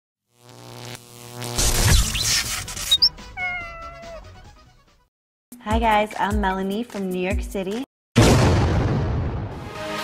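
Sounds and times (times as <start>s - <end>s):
short high chirp: 2.8s - 3.6s
cat meowing: 2.9s - 4.4s.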